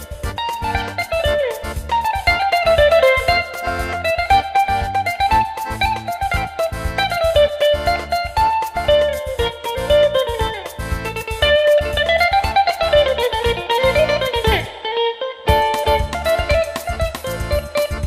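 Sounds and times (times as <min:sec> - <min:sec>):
bouzouki melody: 0:00.0 - 0:18.0.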